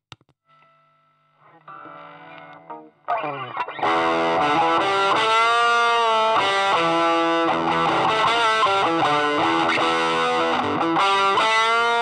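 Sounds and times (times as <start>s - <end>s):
electric guitar through small amp: 1.5s - 12.0s.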